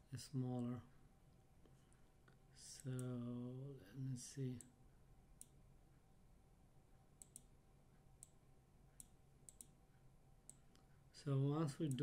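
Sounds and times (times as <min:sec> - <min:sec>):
computer mouse clicks: 0:07.2 - 0:07.6, 0:08.2 - 0:09.8.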